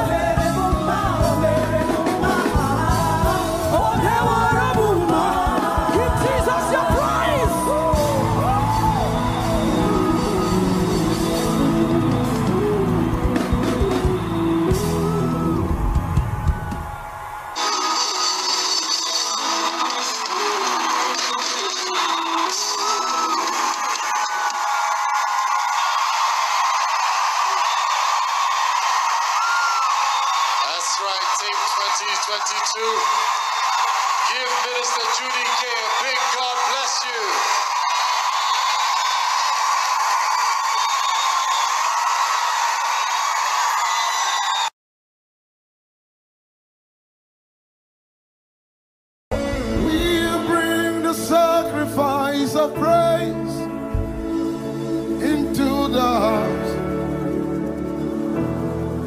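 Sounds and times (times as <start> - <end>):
music: 0.0 - 42.1, 49.3 - 59.0
crowd shouting and cheering: 0.0 - 44.8, 49.3 - 59.0.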